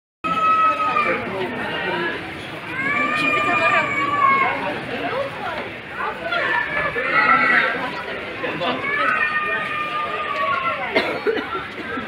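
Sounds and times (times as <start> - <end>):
indistinct voices talking: 0.3 - 12.0.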